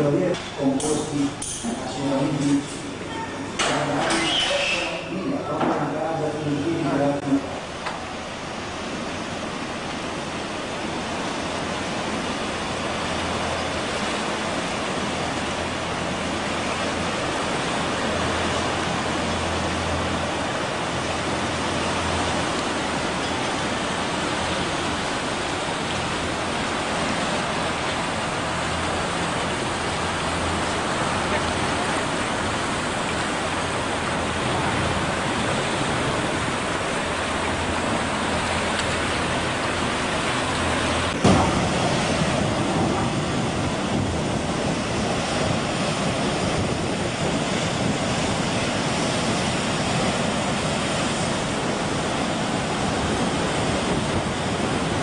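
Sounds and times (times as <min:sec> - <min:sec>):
steady rushing noise: 0:05.1 - 0:55.0.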